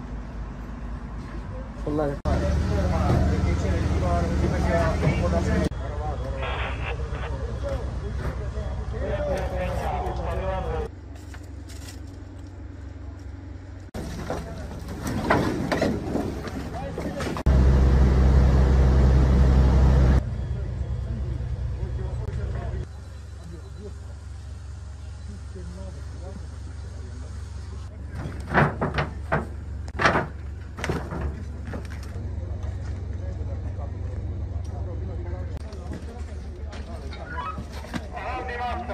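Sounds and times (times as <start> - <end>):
faint voices: 1.3 - 10.9
voices: 1.3 - 10.9, 12.5 - 17.5, 20.1 - 30.0, 31.1 - 38.9
fire engine idling: 1.8 - 14.9, 17.5 - 28.1.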